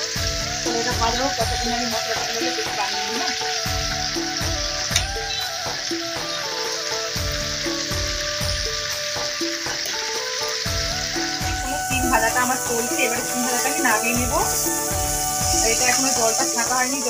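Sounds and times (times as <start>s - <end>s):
background music with beat: 0.0s - 17.0s
beans sizzling in hot oil: 0.0s - 17.0s.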